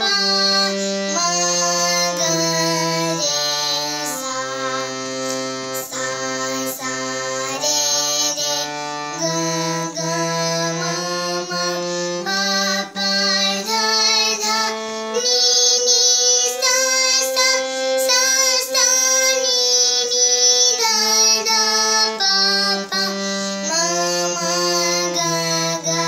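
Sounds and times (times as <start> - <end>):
girl singing: 0.0 - 26.0
harmonium: 0.0 - 26.0.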